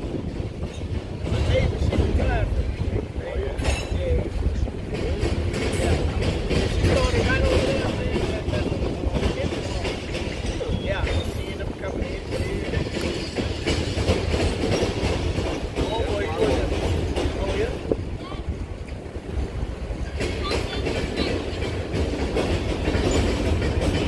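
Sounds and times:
freight train rumbling past: 0.0s - 24.0s
wheels clacking over rail joints: 0.0s - 24.0s.

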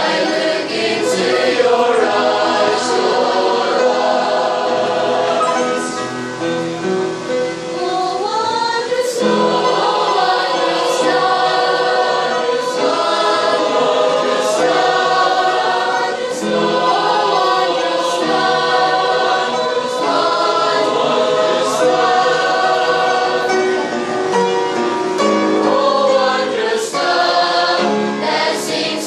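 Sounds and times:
choir singing a hymn: 0.0s - 29.0s.

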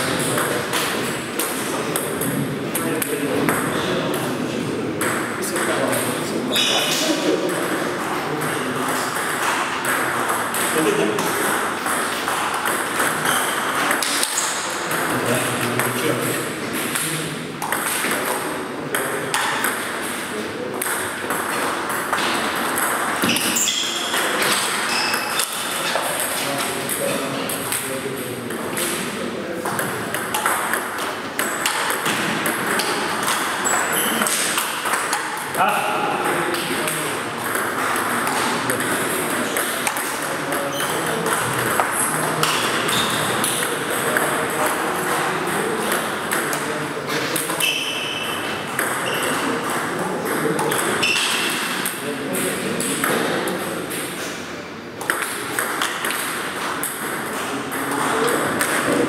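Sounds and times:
table tennis balls clicking: 4.9s - 54.2s, 55.0s - 59.0s.

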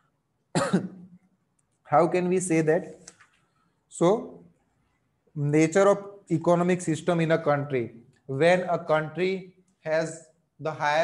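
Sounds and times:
man coughing: 0.5s - 1.2s
man speaking: 1.8s - 3.1s, 3.9s - 4.6s, 5.3s - 11.0s.

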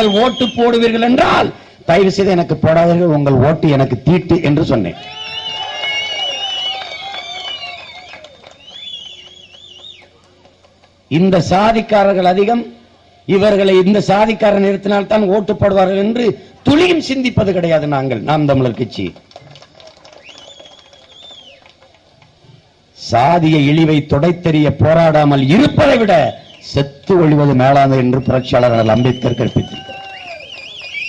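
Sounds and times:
shrill wavering whistles: 0.0s - 1.0s, 5.0s - 10.2s, 20.0s - 21.8s, 25.2s - 26.8s, 27.8s - 31.0s
crowd applauding: 5.0s - 11.1s, 18.5s - 22.4s, 25.8s - 31.0s.

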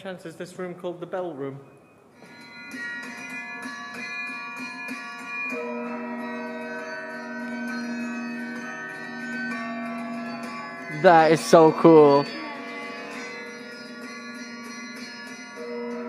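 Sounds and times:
carillon bells playing slow tune: 1.6s - 16.0s.

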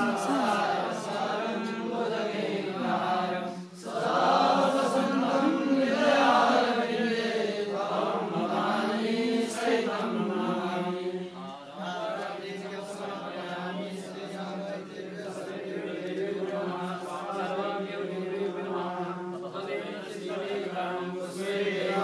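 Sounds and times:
voices chanting mantras: 0.0s - 22.0s.

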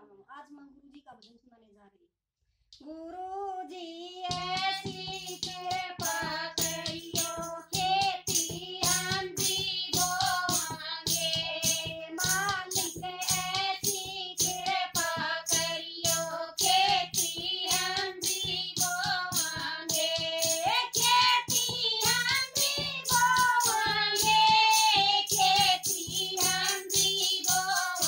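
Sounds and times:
women singing in unison: 2.8s - 28.0s
hand-beaten drum: 4.2s - 28.0s.

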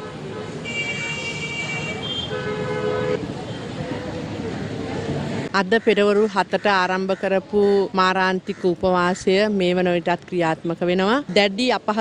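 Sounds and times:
high vehicle horn: 0.0s - 3.2s
low vehicle horn: 0.0s - 3.3s
traffic hum: 0.0s - 12.0s.

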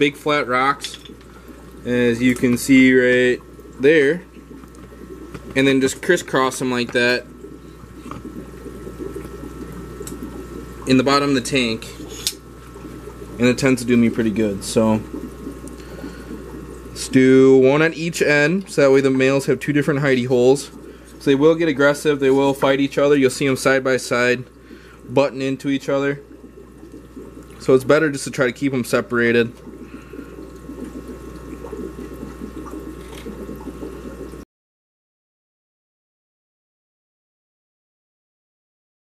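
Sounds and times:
low electrical hum: 0.0s - 34.4s
soft aquarium water noise: 0.0s - 34.5s.

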